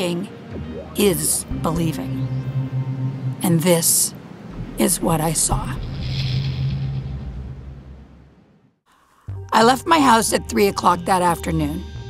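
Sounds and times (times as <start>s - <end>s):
low rumbling drone: 0.0s - 8.5s.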